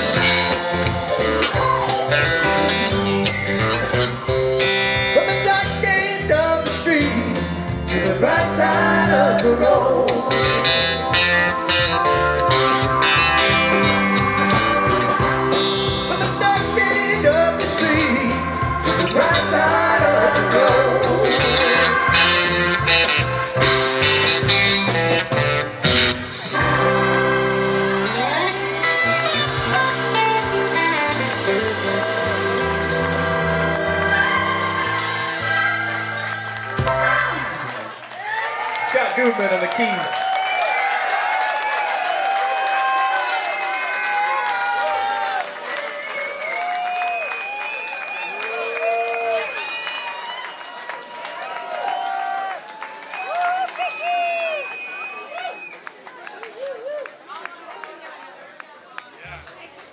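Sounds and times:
electric guitar bending notes: 0.0s - 6.0s, 6.6s - 37.9s
audience clapping and cheering: 0.0s - 6.6s, 7.7s - 59.9s
bass line: 0.0s - 38.0s.

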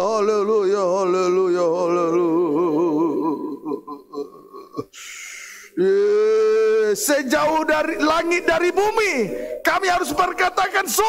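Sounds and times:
man murmuring: 2.7s - 5.0s, 5.8s - 10.4s
man singing wavering note: 7.4s - 10.8s.

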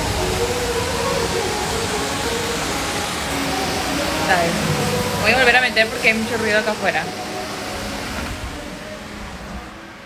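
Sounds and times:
heavy rain rushing: 0.0s - 10.0s.

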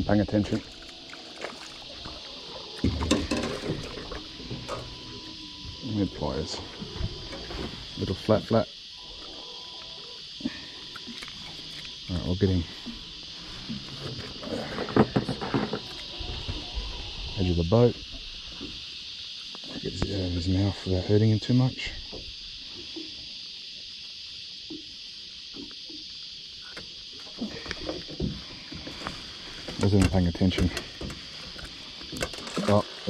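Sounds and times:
insects chorus: 0.0s - 33.0s.

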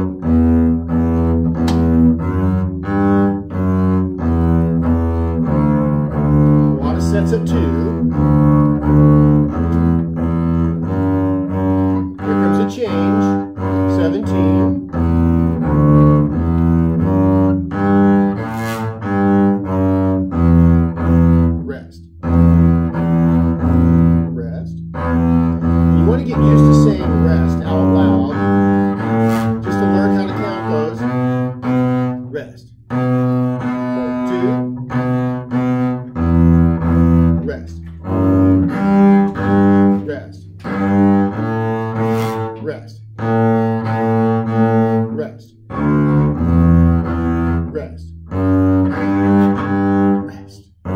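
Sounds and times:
bowed double bass: 0.0s - 50.9s.

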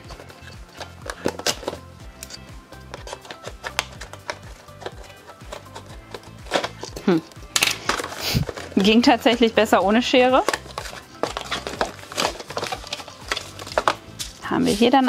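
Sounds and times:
scissors snipping cardboard: 0.0s - 7.0s
cardboard crinkling: 0.0s - 9.4s, 10.3s - 15.0s
soft background music: 0.0s - 15.0s.

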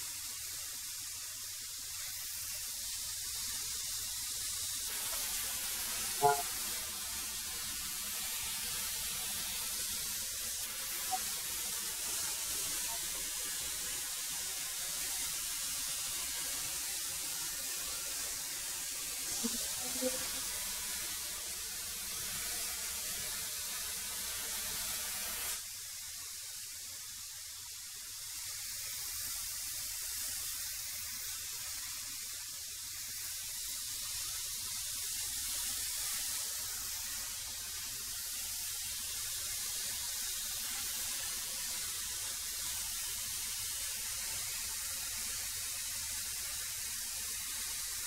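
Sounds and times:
thickness planer hissing: 0.0s - 25.6s.

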